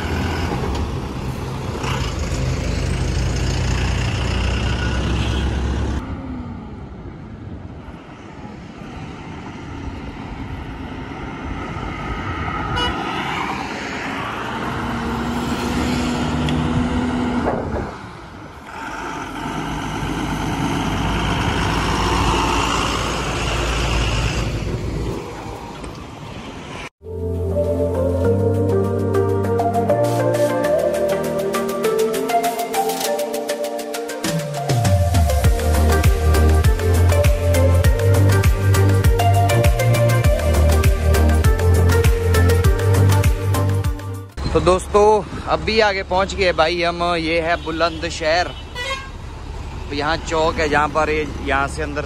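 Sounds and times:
trucks driving past: 0.0s - 52.0s
vehicle horn: 12.7s - 13.2s, 47.3s - 49.2s.

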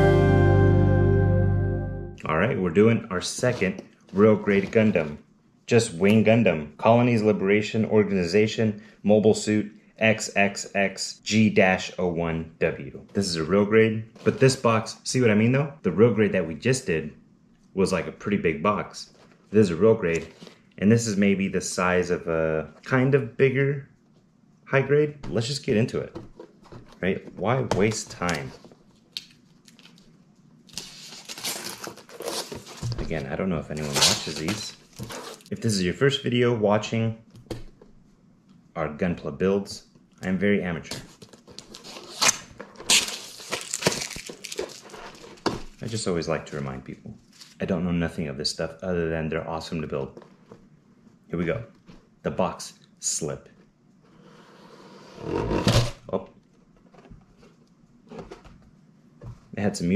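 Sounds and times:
cardboard rubbing and scraping: 3.2s - 5.1s, 54.1s - 56.0s
cardboard lid scraping: 54.2s - 56.0s.

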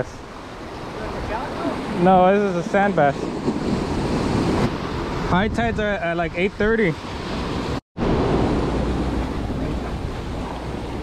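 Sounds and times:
surf washing over rocks: 0.0s - 11.0s
wind buffeting microphone: 0.0s - 11.0s.

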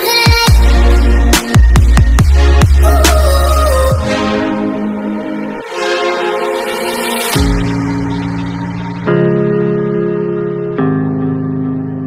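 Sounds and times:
synthesizer chords: 0.0s - 12.0s.

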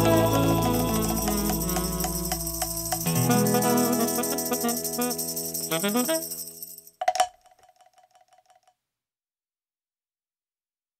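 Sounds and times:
ringing note: 0.0s - 7.0s
sharp percussion strikes: 0.0s - 7.2s
rattle of quick taps: 7.0s - 8.7s.

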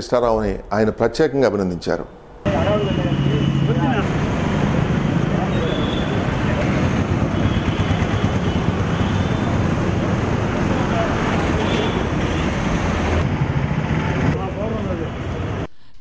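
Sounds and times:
indistinct voices talking: 1.6s - 13.3s
road traffic noise: 2.0s - 15.7s.

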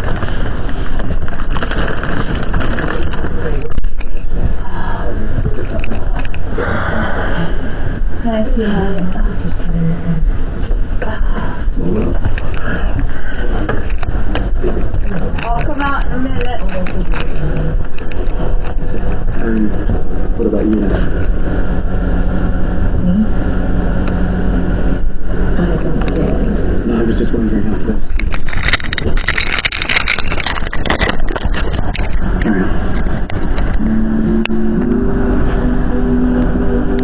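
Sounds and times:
low rumble: 0.0s - 37.0s
muffled voices: 0.0s - 37.0s
held steady tones: 2.3s - 37.0s
sharp clatters: 27.7s - 33.8s.

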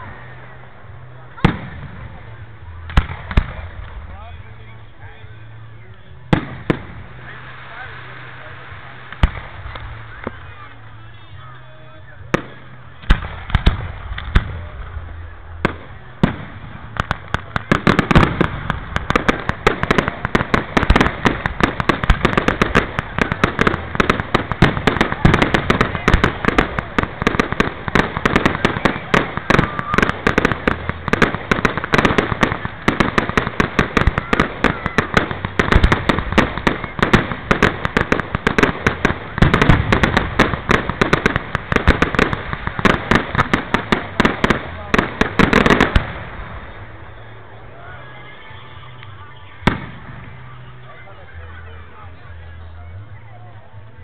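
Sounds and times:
fireworks bangs and crackles: 0.0s - 54.0s.

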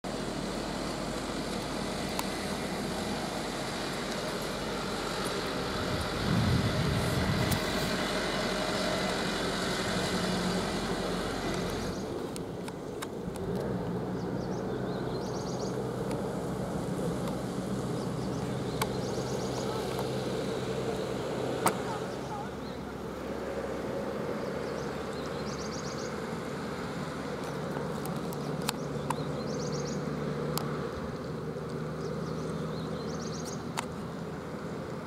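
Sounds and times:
distant heavy truck engine climbing: 0.0s - 35.0s
minibus driving past on wet road: 0.1s - 12.4s.

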